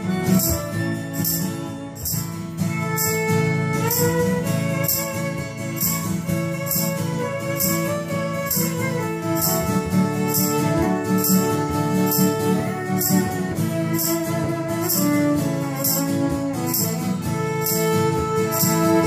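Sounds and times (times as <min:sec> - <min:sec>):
fiddle playing bowed melody: 0:00.0 - 0:19.0
steady beat accompaniment: 0:00.0 - 0:19.0.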